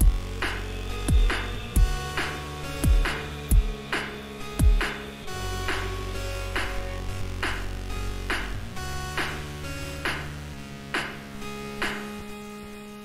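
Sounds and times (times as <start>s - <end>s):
beatboxed snare hits: 0.0s - 5.9s, 6.6s - 7.7s, 9.2s - 10.4s, 11.0s - 11.2s, 11.8s - 12.1s
beatboxed kick drums: 0.0s - 12.2s
held bass and synth-like tones: 0.0s - 13.0s.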